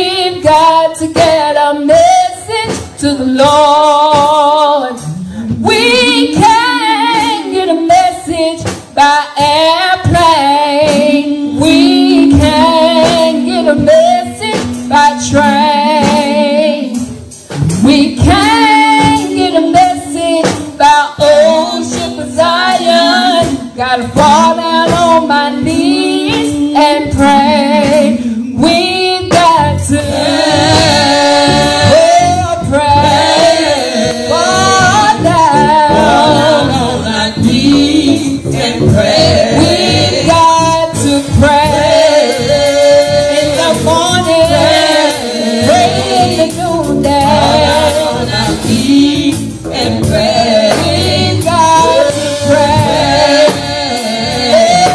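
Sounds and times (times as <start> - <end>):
woman singing into microphone: 0.0 - 54.9.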